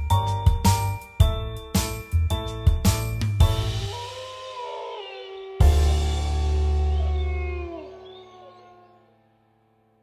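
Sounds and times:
cartoon werewolf howl: 3.9s - 9.1s.

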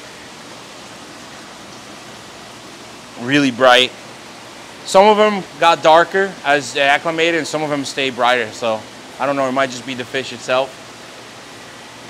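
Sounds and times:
aquarium filter water rushing: 0.0s - 12.0s.

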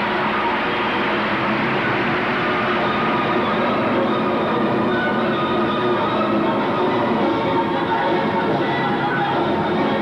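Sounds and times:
faint music: 0.0s - 10.0s.

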